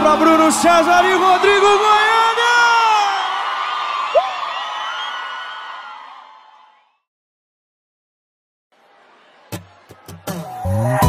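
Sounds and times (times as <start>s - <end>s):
crowd cheering and whooping: 0.0s - 7.0s
band playing: 9.6s - 11.0s.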